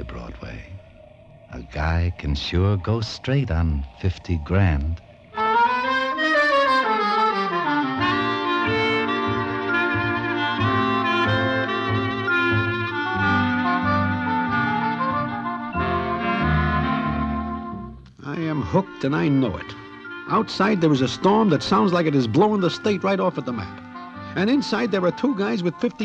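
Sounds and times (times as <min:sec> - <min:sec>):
orchestral music with brass and reeds: 0:05.4 - 0:26.0.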